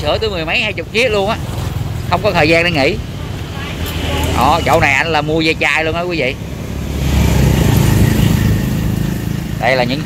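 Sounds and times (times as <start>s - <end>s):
small motorcycle engine rumbling: 0.0s - 10.0s.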